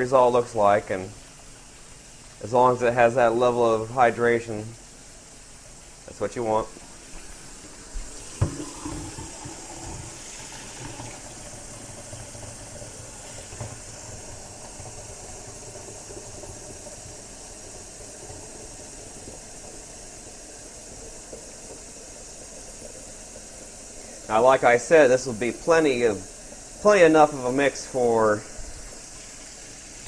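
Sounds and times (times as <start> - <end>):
faucet water filling pitcher: 0.0 - 4.6, 5.7 - 30.0.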